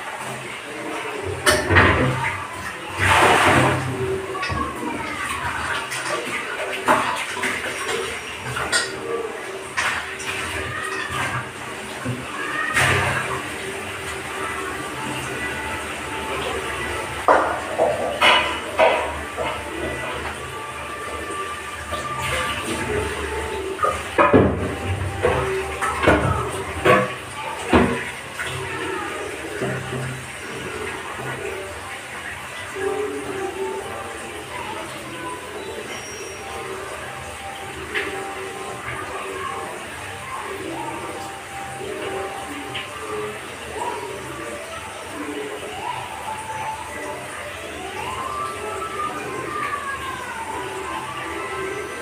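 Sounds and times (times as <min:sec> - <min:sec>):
running tap water: 0:00.0 - 0:52.0
steel pots and utensils clattering: 0:00.4 - 0:33.1.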